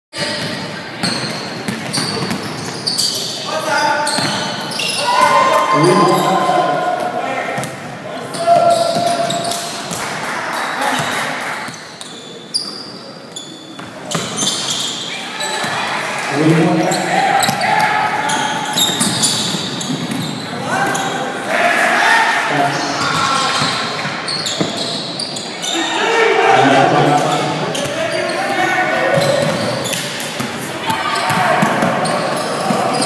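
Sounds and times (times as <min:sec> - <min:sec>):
sneakers squeaking: 0:00.2 - 0:15.9, 0:16.8 - 0:21.4, 0:22.7 - 0:26.2, 0:27.0 - 0:33.0
voices shouting: 0:03.5 - 0:07.6, 0:08.2 - 0:11.6, 0:15.1 - 0:19.5, 0:20.3 - 0:23.8, 0:25.6 - 0:30.0, 0:30.6 - 0:33.0.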